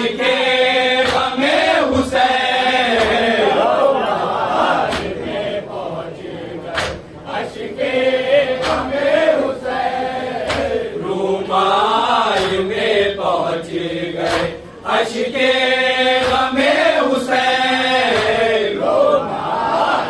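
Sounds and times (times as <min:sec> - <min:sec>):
men chanting in unison: 0:00.0 - 0:20.0.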